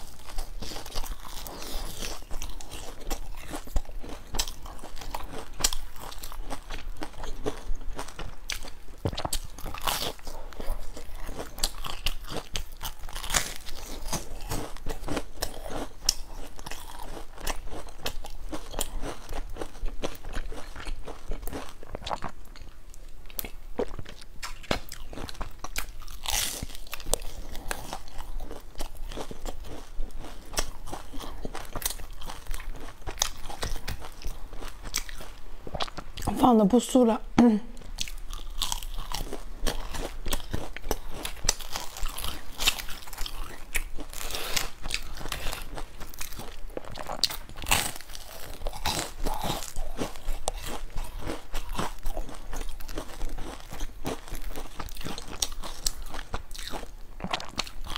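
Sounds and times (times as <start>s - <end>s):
chewing crunchy bun: 0.0s - 36.4s, 37.8s - 57.9s.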